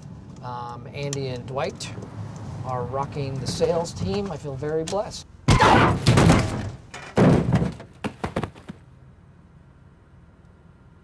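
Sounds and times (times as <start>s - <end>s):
body thudding on car hood: 5.5s - 8.7s.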